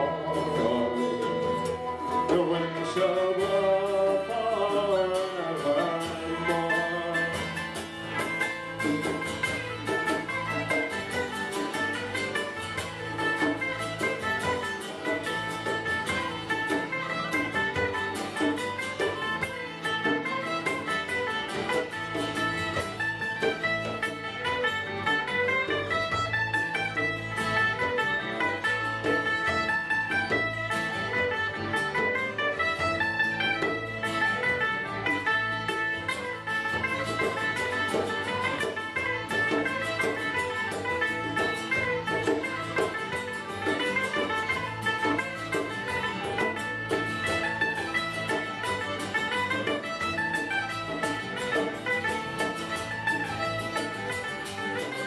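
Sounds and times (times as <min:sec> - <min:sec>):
acoustic guitars: 0:00.0 - 0:55.0
high melody line: 0:00.0 - 0:55.0.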